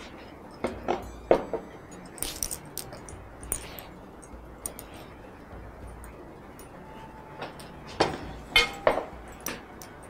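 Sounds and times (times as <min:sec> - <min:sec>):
dishes clinking: 0:00.0 - 0:05.1, 0:07.4 - 0:10.0.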